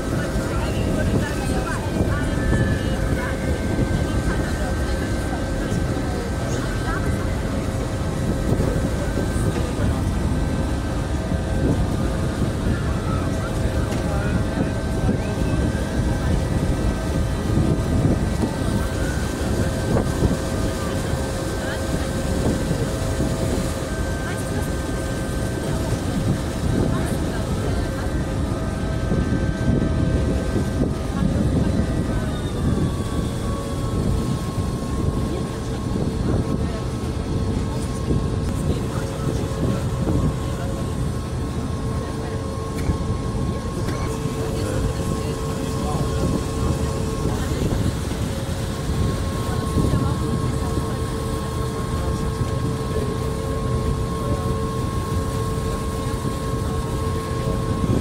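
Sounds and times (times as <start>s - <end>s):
boat engine rumbling: 0.0s - 58.0s
wind buffeting microphone: 0.0s - 58.0s.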